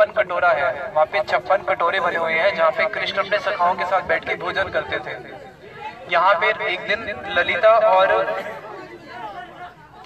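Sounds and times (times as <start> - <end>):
man speaking: 0.0 - 8.7
background chatter of voices: 0.0 - 10.0.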